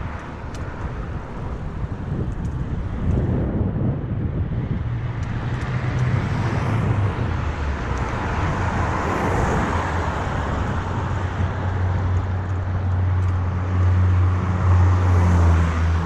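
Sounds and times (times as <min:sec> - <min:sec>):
tyre and road rumble: 0:00.0 - 0:16.0
wind buffeting microphone: 0:00.0 - 0:16.0.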